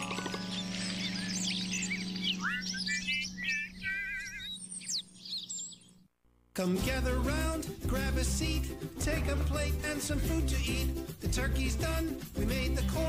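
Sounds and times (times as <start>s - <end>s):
cartoon bird chirps and trills: 0.0s - 6.0s
song music: 6.6s - 13.0s.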